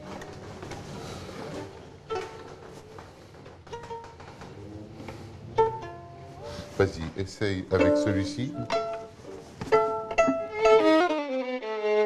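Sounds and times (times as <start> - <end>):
violin being bowed: 1.5 - 2.8, 3.6 - 6.8, 7.6 - 12.0.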